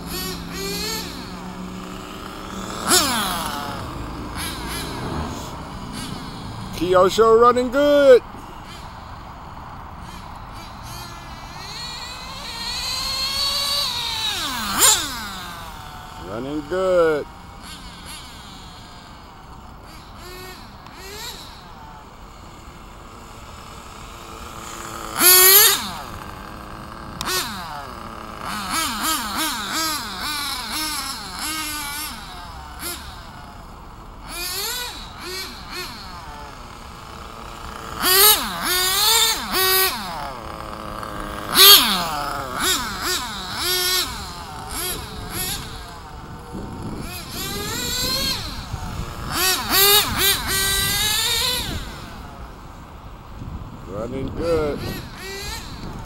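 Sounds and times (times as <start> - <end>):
toy car motor revving: 0.0 - 56.0.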